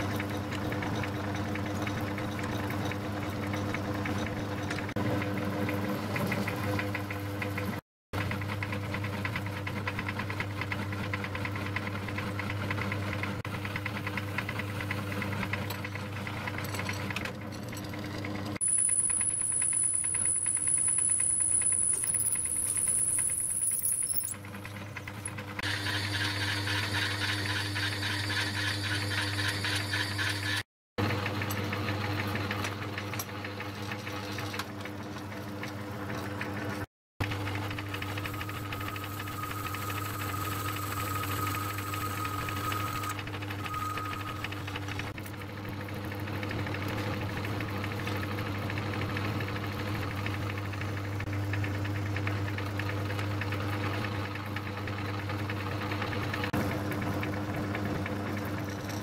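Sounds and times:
metal lathe running: 18.6 - 34.6, 37.2 - 45.2
lathe cutting metal: 25.6 - 30.6.

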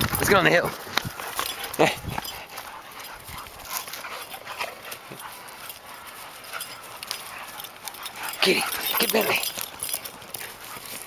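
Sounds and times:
paws scuffling on dirt: 0.0 - 11.0.

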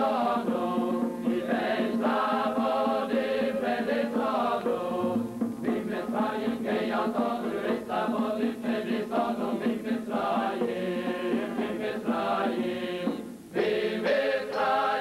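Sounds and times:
voices singing liturgical chant: 0.0 - 15.0.

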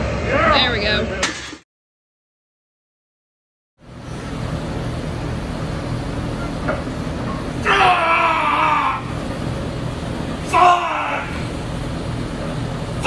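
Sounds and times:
gym room hum: 0.0 - 1.6, 3.8 - 13.0
person yelling: 7.6 - 9.1, 10.4 - 11.4.

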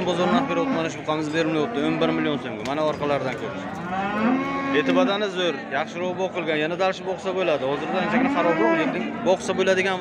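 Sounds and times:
cow mooing: 0.0 - 2.3, 3.8 - 5.2, 7.8 - 9.0.

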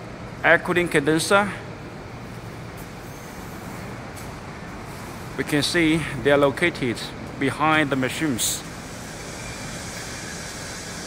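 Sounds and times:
factory mechanical rumble and hiss: 0.0 - 11.0.

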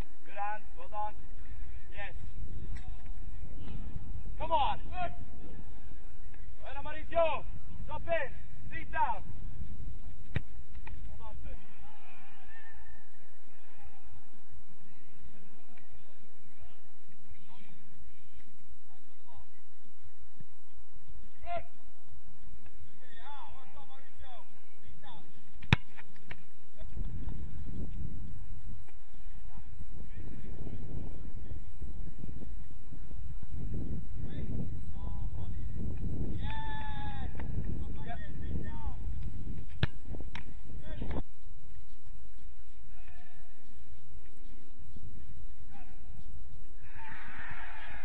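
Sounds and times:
wind rumble on microphone: 0.0 - 48.0
player shouting calls: 0.2 - 9.3, 21.3 - 22.0, 36.3 - 39.0
ball being kicked: 10.0 - 11.1, 25.4 - 29.0, 39.1 - 41.2
wind gusts on microphone: 24.5 - 48.0.

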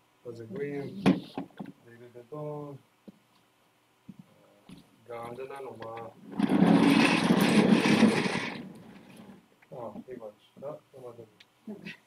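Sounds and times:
office chair rolling on hard floor: 6.2 - 9.4.

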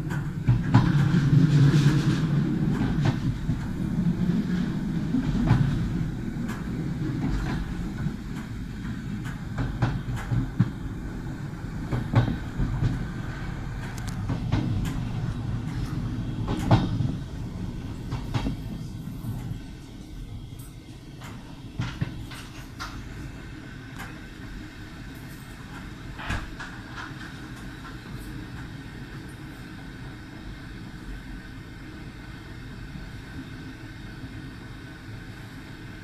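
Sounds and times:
train rumble inside carriage: 0.0 - 36.0.

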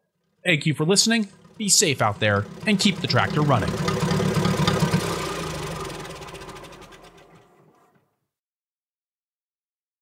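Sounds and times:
tractor engine running: 0.2 - 8.0.

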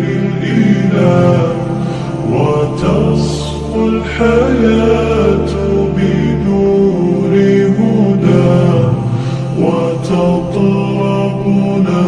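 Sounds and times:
men singing long notes: 0.0 - 12.0
steady low drone: 0.0 - 12.0.

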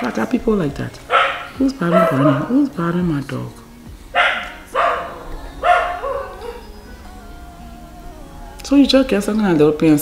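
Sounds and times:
dog barking: 1.1 - 2.5, 4.2 - 6.7.

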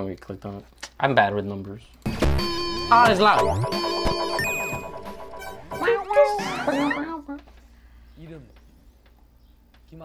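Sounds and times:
intro jingle music: 2.1 - 7.0
sliding-pitch sound effects: 2.2 - 7.1.

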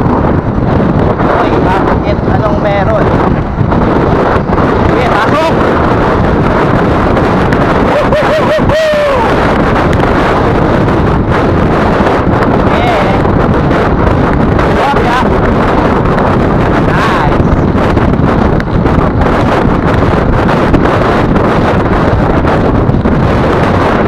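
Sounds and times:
wind noise on microphone: 0.0 - 24.0.

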